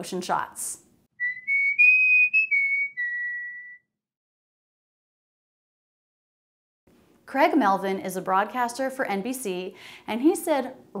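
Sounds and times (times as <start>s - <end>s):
whistled jingle: 1.2s - 4.0s.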